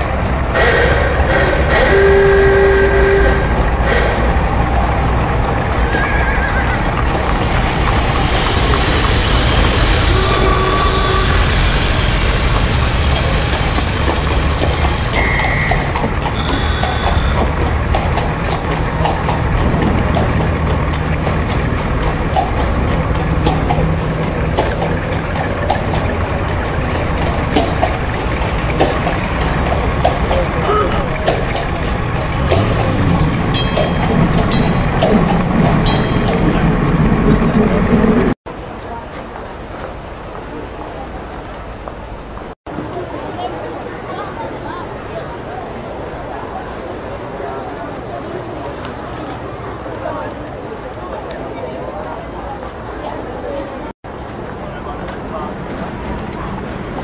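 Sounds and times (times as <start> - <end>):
hooves clip-clopping: 0.0 - 43.5
crowd voices: 0.0 - 57.0
horse whinnying: 5.8 - 7.0, 15.2 - 17.7.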